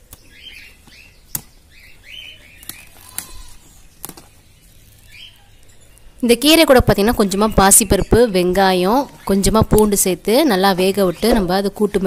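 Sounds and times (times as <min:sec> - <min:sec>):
small birds chirping: 0:00.0 - 0:12.0
plant stems snapping: 0:00.9 - 0:01.6, 0:02.5 - 0:05.5.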